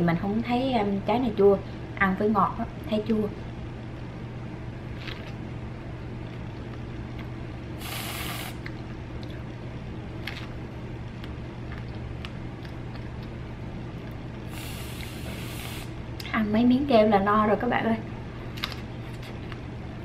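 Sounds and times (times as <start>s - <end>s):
steady low hum: 0.0s - 20.0s
aerosol can hissing: 7.8s - 8.6s, 14.5s - 15.9s
chewing clicks: 8.6s - 9.4s, 11.1s - 13.4s.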